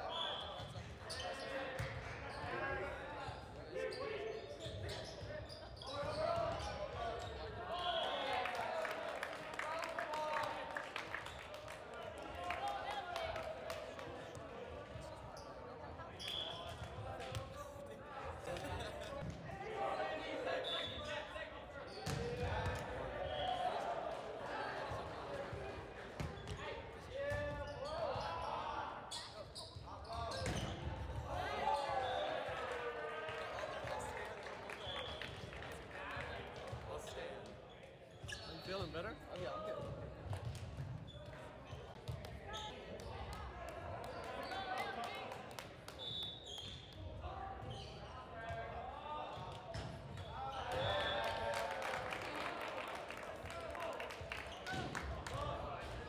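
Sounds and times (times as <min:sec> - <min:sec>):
players shouting and chatting: 0:00.0 - 0:56.0.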